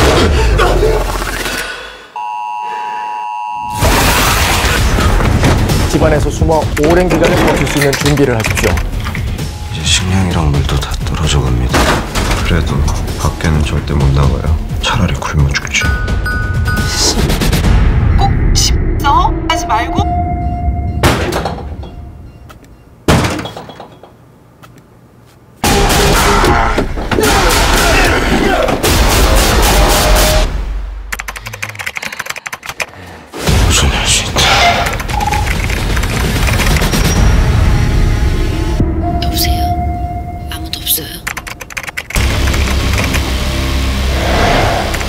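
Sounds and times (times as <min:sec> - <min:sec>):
electronic beep tone: 0:19.6 - 0:21.2, 0:39.0 - 0:40.9.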